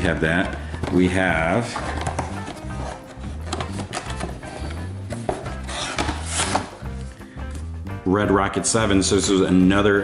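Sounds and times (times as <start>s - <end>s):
background music with bass line: 0.0s - 10.0s
hands rummaging in cardboard box: 0.3s - 6.7s.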